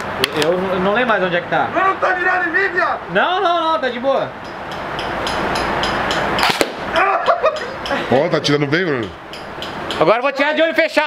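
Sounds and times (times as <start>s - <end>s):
voices: 0.0s - 11.0s
airsoft rifle shot: 6.4s - 6.9s.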